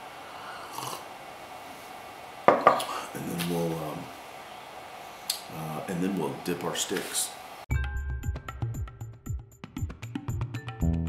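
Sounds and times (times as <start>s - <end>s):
person sipping from mug: 0.4s - 1.1s.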